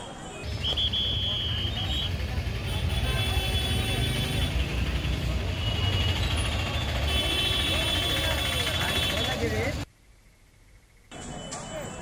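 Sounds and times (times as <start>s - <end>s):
traffic rumble: 0.4s - 12.0s.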